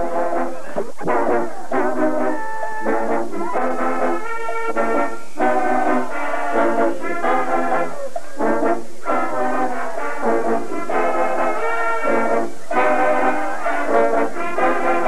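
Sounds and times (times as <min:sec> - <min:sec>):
marching band brass playing: 0:00.0 - 0:15.0.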